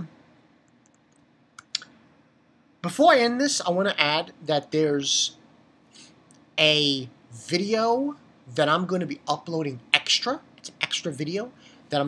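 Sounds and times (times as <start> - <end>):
man speaking: 2.8 - 5.4, 6.6 - 12.0.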